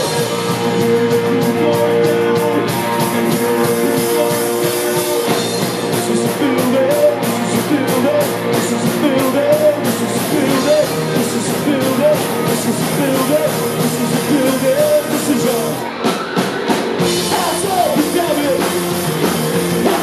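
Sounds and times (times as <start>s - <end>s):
person singing: 0.0s - 15.9s, 17.2s - 20.0s
punk rock band playing: 0.0s - 20.0s.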